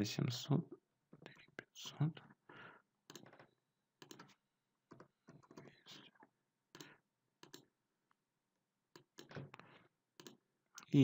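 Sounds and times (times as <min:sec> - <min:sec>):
person whispering: 0:01.2 - 0:02.3, 0:05.6 - 0:06.3.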